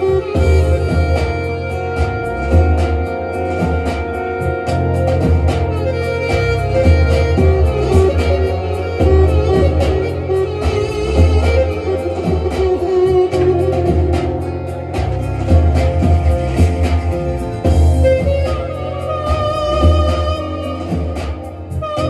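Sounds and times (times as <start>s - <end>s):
deep bass line: 0.0s - 22.0s.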